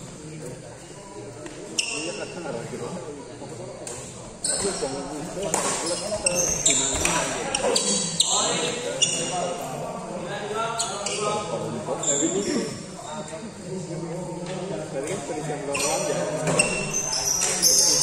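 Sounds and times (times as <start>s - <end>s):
shoes squeaking on court floor: 1.4s - 2.4s, 4.0s - 9.6s, 10.7s - 13.3s, 15.7s - 18.0s.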